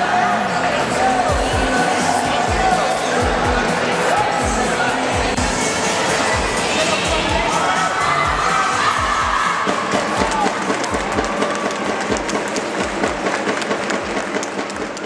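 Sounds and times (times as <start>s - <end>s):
background music with steady beat: 0.0s - 15.0s
girls cheering and shouting: 7.0s - 11.9s.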